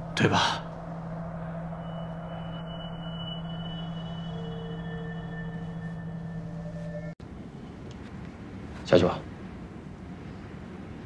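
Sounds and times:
faint high held tone: 0.0 - 7.2
low sustained drone: 0.0 - 7.2
mid-pitched tone: 0.0 - 7.2.

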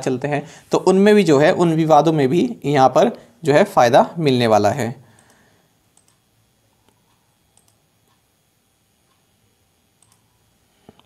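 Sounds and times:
faint computer mouse clicks: 6.0 - 6.2, 6.8 - 8.2, 10.0 - 10.3.

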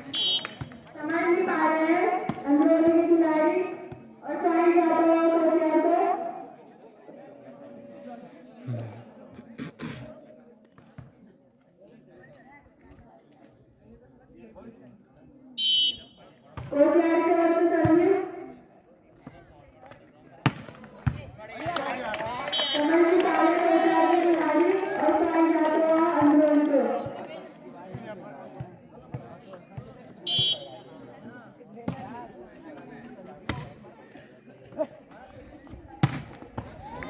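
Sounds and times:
referee's whistle blasts: 0.0 - 0.7, 15.6 - 16.2, 22.5 - 22.9, 30.3 - 30.9.

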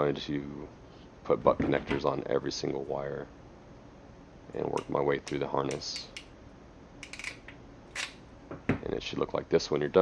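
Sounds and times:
ratcheting crimper clicking: 4.8 - 6.3, 7.0 - 8.2.

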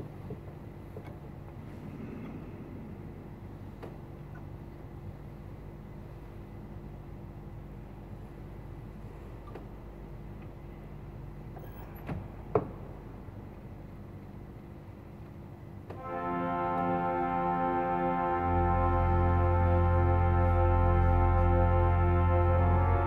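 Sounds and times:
low steady hum: 0.0 - 23.0
pipe organ chord: 15.9 - 23.0
deep organ pedal bass note: 16.0 - 23.0.

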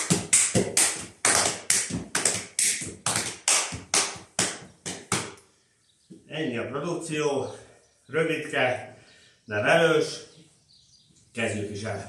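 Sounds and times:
hand claps: 0.0 - 5.4
hand slaps on legs and boots: 0.0 - 5.4.

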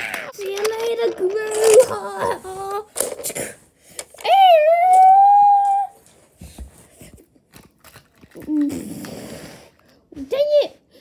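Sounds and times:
plastic toys clicking: 0.0 - 6.0.

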